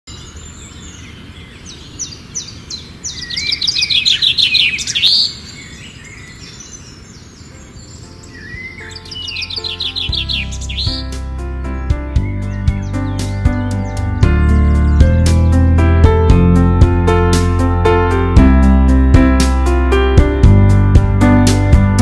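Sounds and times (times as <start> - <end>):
bird chirping in trills: 0.1 - 15.6
plucked melody music: 8.1 - 22.0
low bass: 10.4 - 22.0.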